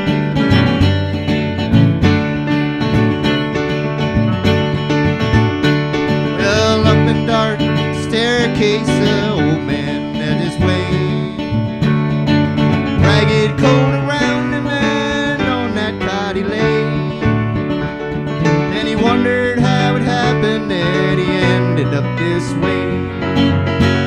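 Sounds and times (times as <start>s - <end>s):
acoustic guitar: 0.0s - 24.0s
keyboard: 0.0s - 24.0s.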